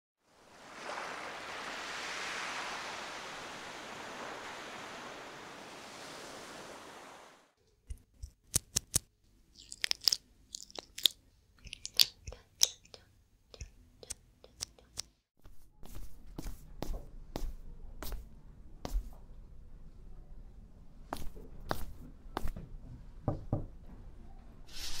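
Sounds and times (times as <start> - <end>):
crisp clicks and crackles: 7.9 - 13.0.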